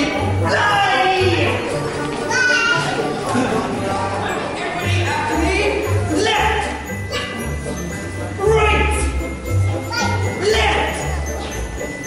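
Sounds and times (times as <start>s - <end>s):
young children calling excitedly: 2.2s - 3.2s, 5.7s - 7.5s, 9.7s - 11.7s
child shouting: 2.3s - 3.0s, 7.1s - 7.4s, 9.9s - 10.8s.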